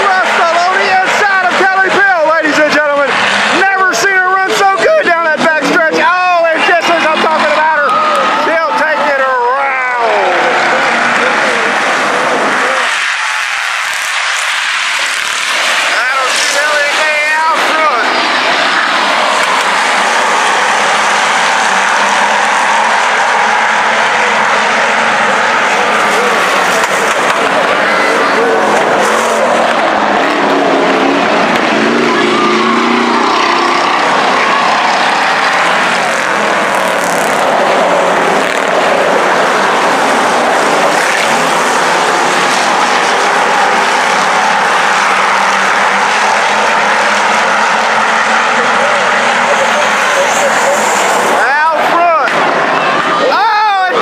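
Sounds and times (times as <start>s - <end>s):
race car engines roaring: 0.0s - 54.0s.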